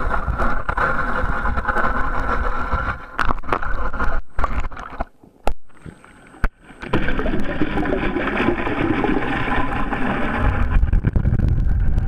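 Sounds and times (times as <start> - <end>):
boat motor hum underwater: 0.0 - 12.0.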